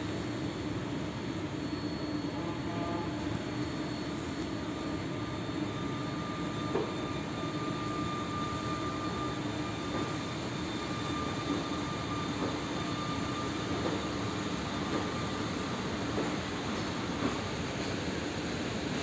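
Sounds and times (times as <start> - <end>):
thin high whine: 0.0 - 19.0.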